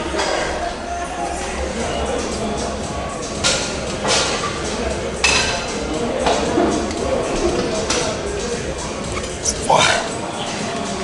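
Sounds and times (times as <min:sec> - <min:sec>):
voices: 0:00.5 - 0:11.0.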